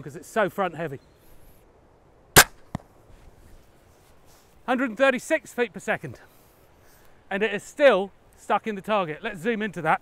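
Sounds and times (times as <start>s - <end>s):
bolt striking straw target: 2.4s - 2.9s.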